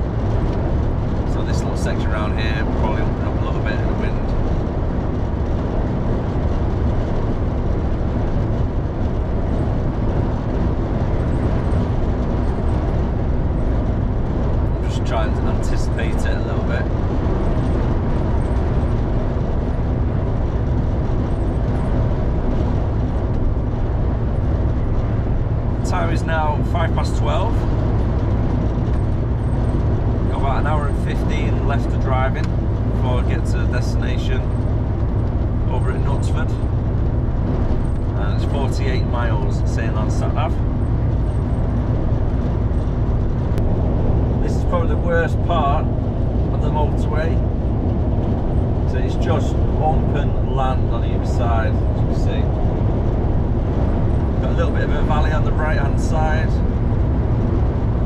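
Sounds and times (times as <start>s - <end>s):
lorry engine drone: 0.0s - 58.0s
road and wind noise: 0.0s - 58.0s.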